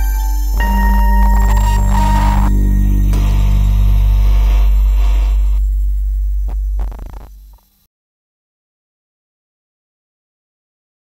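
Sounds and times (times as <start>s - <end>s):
deep electronic drone: 0.0s - 7.9s.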